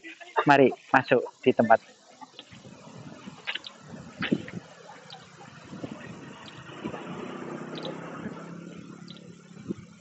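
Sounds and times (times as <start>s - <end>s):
vehicle engine passing: 2.6s - 10.0s.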